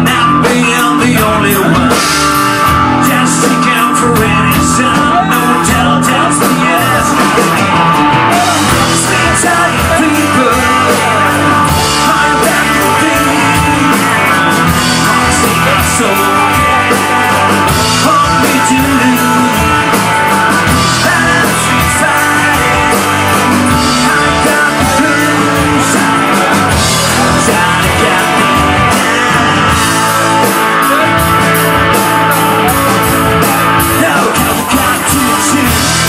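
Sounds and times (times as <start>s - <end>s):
bass: 0.0s - 36.0s
distorted electric guitars: 0.0s - 36.0s
drum beat with cymbal hits: 0.0s - 36.0s.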